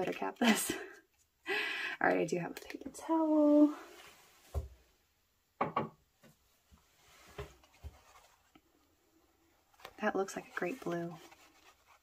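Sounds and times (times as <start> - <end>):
light knocks on tabletop: 5.6 - 6.0
paper towel rustling: 6.8 - 8.6, 9.6 - 12.0.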